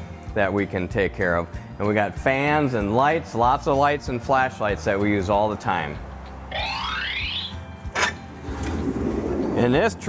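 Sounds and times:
rising tone: 0:06.5 - 0:07.7.

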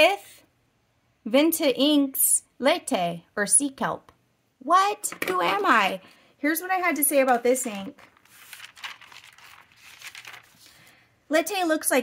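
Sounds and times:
paper rustling: 0:07.1 - 0:11.0.

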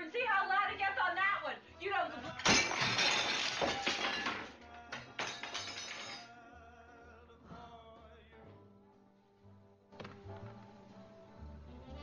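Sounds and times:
plate smashing: 0:02.4 - 0:06.3
shards clinking: 0:02.4 - 0:06.3.

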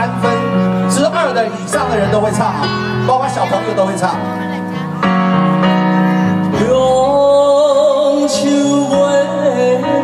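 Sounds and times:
live band backing chords: 0:00.0 - 0:10.0.

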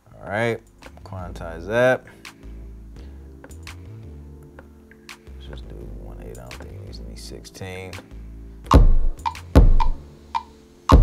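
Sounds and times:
deep kick drum hits: 0:08.7 - 0:10.0.

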